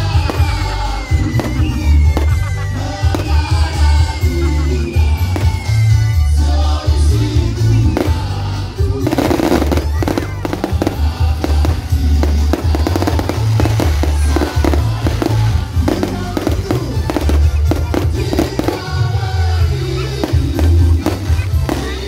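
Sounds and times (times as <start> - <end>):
fireworks crackling: 0.0 - 22.0
music with heavy bass beat: 0.0 - 22.0.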